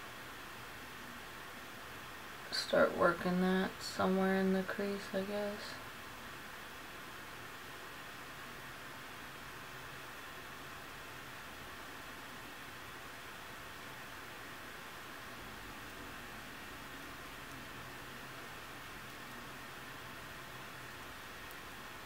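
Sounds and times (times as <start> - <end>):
faint hiss of recording noise: 0.0 - 22.0.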